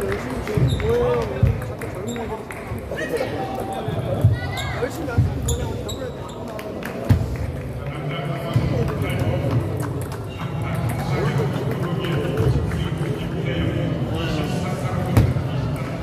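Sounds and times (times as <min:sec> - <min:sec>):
chatter of many voices: 0:00.0 - 0:16.0
table tennis balls clicking: 0:09.1 - 0:12.5.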